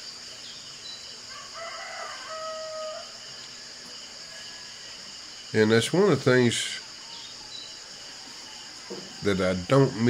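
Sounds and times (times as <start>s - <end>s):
insects chirring: 0.0s - 10.0s
faint rooster crow: 1.2s - 3.2s, 7.0s - 10.0s.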